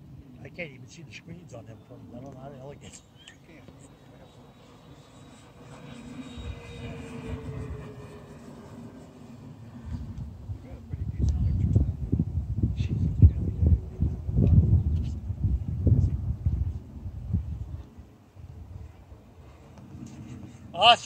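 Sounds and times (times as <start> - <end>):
model airplane engine flying past: 0.0 - 21.0
wind rumbling on microphone: 5.8 - 20.8.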